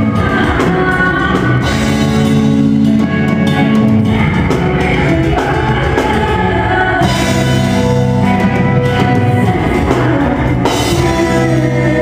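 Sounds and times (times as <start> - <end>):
distorted guitars: 0.0 - 12.0
drum kit: 0.0 - 12.0.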